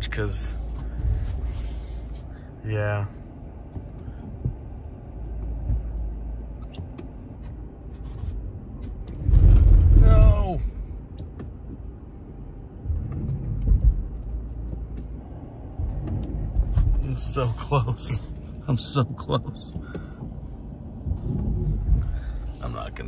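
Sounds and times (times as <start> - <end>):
car engine rumbling under load: 0.0 - 23.0.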